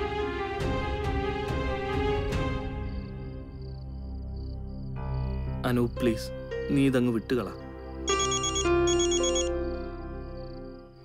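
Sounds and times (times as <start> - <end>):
background music: 0.0 - 11.0
phone ringtone trilling: 8.1 - 9.7.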